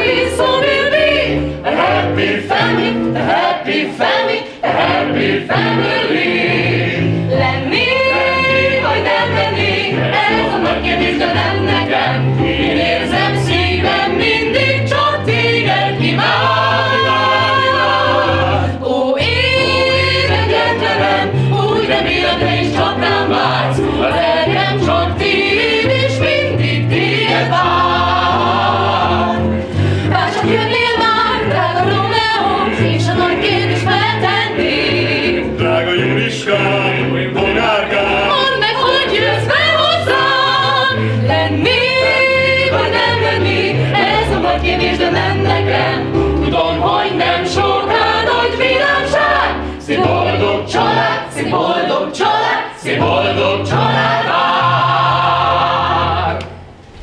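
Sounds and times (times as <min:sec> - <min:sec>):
group singing in harmony: 0:00.0 - 0:57.0.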